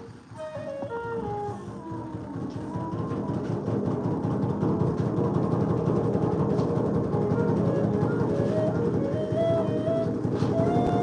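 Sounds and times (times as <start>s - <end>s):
bamboo flute melody: 0.0s - 11.0s
drum roll on large drum: 0.0s - 11.0s.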